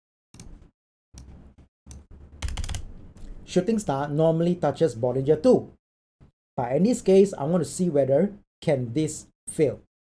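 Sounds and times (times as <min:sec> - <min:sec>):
computer keyboard tapping: 0:01.2 - 0:03.0.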